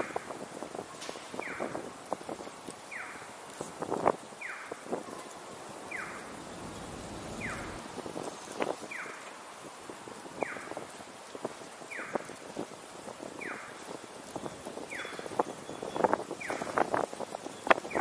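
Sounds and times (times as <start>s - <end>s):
low street noise: 0.0s - 15.5s
crossing signal chirping: 5.9s - 7.8s.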